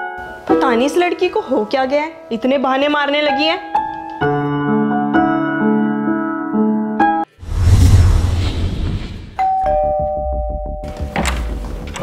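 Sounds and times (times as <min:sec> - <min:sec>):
loud rushing noise: 0:07.4 - 0:09.4
two-tone doorbell chime: 0:09.4 - 0:11.1.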